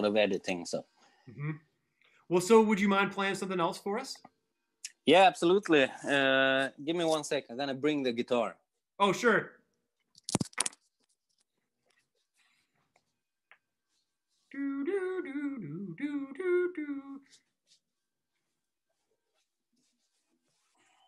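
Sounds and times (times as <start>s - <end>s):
person humming a tune: 14.5s - 17.3s.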